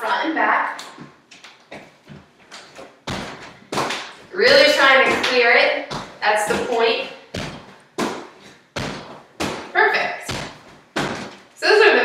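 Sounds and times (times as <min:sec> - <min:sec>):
feet thudding on hardwood floor: 0:01.0 - 0:11.5.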